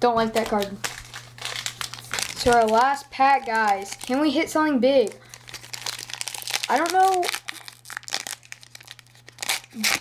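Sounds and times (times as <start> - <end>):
foil wrapper crinkling and tearing: 0.3 - 10.0.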